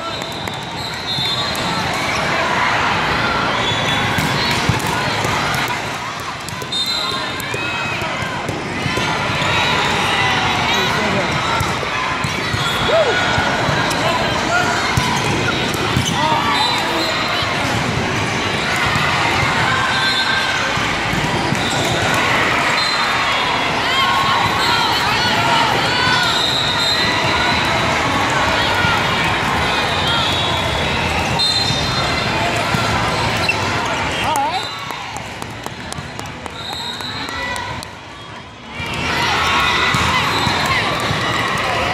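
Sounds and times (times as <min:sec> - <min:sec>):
shrill whistle: 0:00.0 - 0:01.7, 0:06.7 - 0:07.3, 0:22.7 - 0:23.1, 0:26.2 - 0:27.2, 0:31.4 - 0:32.2, 0:36.6 - 0:37.4
people calling and shouting: 0:00.0 - 0:41.9
volleyball hits and bounces: 0:04.0 - 0:10.0, 0:11.0 - 0:16.9.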